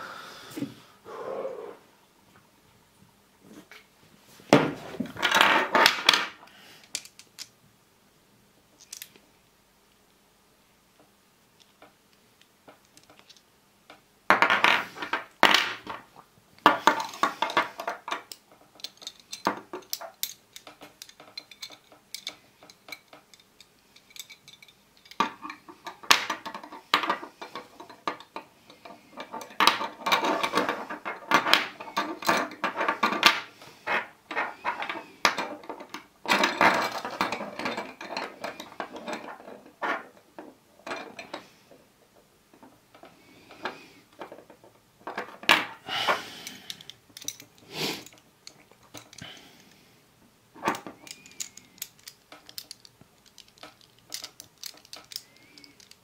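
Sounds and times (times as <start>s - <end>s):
metal puzzle pieces clicking: 5.6s - 7.5s, 8.8s - 9.2s, 12.7s - 13.4s, 16.6s - 28.4s, 46.4s - 49.3s, 50.6s - 56.0s.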